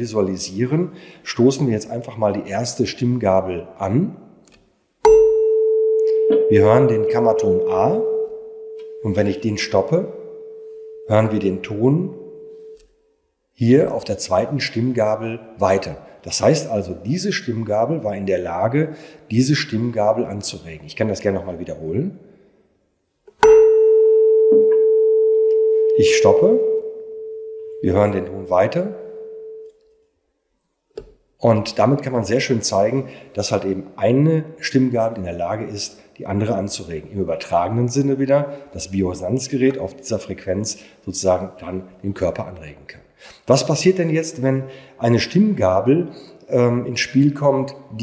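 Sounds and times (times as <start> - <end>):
rubber mallet striking tuning fork: 5.0 - 9.0, 23.4 - 25.7
tuning fork ringing pure tone: 5.0 - 9.4, 10.1 - 11.4, 12.1 - 12.8, 23.4 - 27.8, 28.9 - 29.7.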